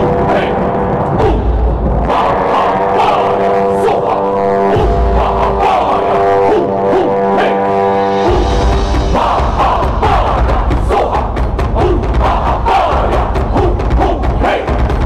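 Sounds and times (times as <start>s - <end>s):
group chanting over music: 0.0s - 15.0s.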